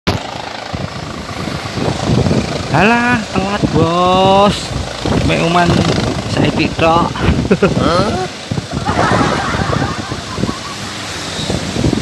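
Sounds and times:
helicopter running: 0:00.1 - 0:12.0.

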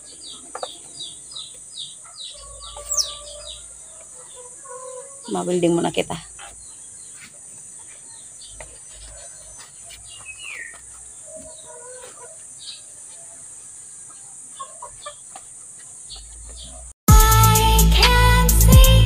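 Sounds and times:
chickens clucking: 0:00.0 - 0:17.0.

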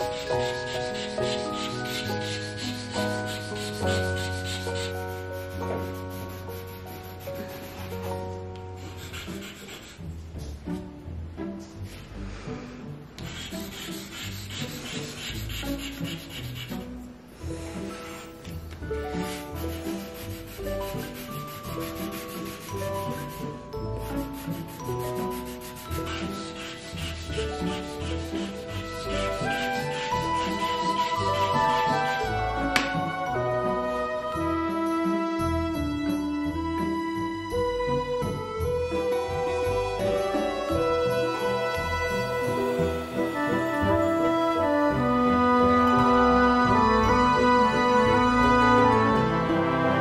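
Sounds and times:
charcoal scratching on paper: 0:00.0 - 0:10.2, 0:13.2 - 0:17.1, 0:17.8 - 0:32.9
background music held notes: 0:00.0 - 0:50.0.

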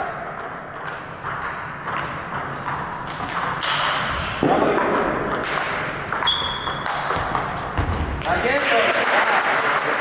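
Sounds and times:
sports hall hum: 0:00.0 - 0:10.0
table tennis balls clicking: 0:00.3 - 0:08.7.

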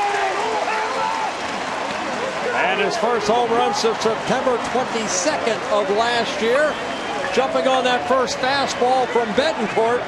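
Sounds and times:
crowd cheering and applauding: 0:00.0 - 0:10.0.

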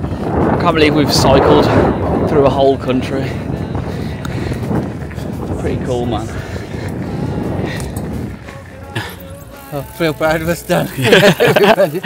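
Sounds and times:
wind buffeting microphone: 0:00.0 - 0:11.4
background music: 0:00.6 - 0:12.0.

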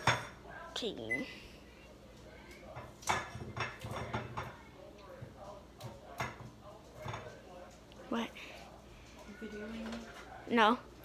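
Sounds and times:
faint talk: 0:00.4 - 0:03.0, 0:03.8 - 0:11.0
objects knocking and clattering: 0:02.8 - 0:04.6.

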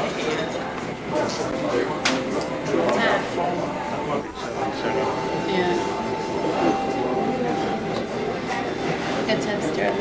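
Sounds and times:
many overlapping voices: 0:00.0 - 0:10.0
steady high hum: 0:00.0 - 0:10.0.

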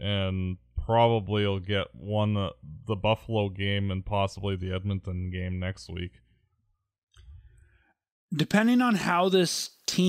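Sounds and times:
mouth click and breath: 0:07.1 - 0:07.8.

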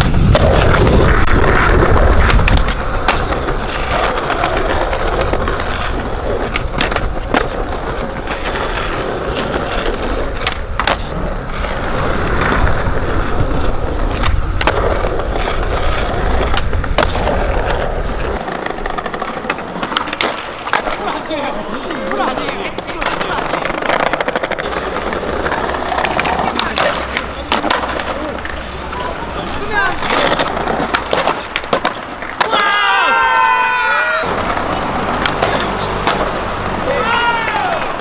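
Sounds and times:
skateboard clacking on ground: 0:00.0 - 0:33.1, 0:34.0 - 0:38.0
skateboard wheels rolling: 0:00.0 - 0:38.0.

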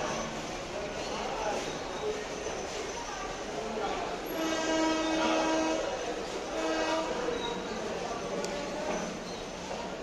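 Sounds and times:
trains moving: 0:00.0 - 0:10.0
train horn blasts: 0:04.3 - 0:07.4.

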